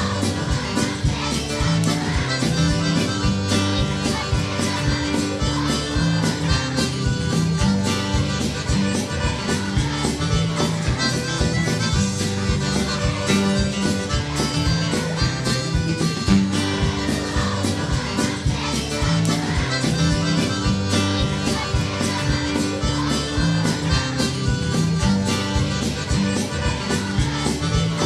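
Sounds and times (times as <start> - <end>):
accordion melody: 0.0 - 28.0
bass line: 0.0 - 28.0
guitar: 0.0 - 28.0
steady drum beat: 0.0 - 28.0.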